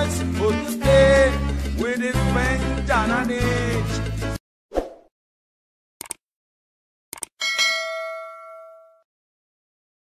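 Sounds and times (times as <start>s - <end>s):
notification bell ding: 7.4s - 9.1s.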